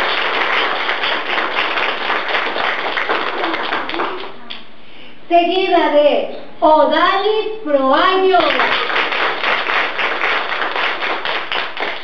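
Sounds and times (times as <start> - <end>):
hands clapping quickly: 0.0 - 4.7, 8.4 - 12.0.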